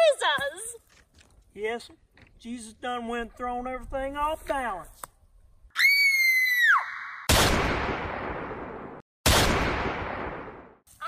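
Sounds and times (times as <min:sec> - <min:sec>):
high-pitched human scream: 0:05.8 - 0:07.2.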